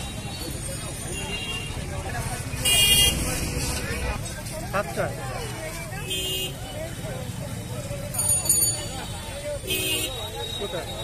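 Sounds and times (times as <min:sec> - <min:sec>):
low traffic rumble: 0:00.0 - 0:11.0
street market crowd chatter: 0:00.0 - 0:11.0.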